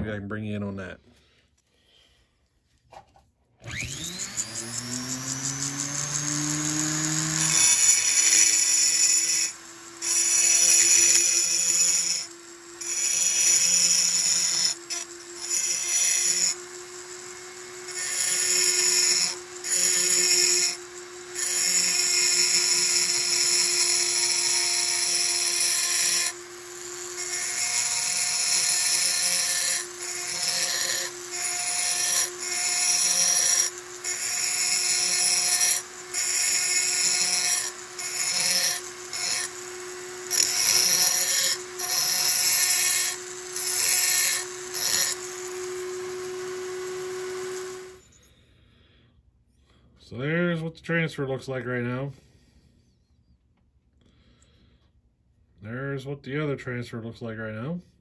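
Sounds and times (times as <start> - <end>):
burr grinding metal: 3.6 - 48.0
die grinder whine: 3.6 - 48.4.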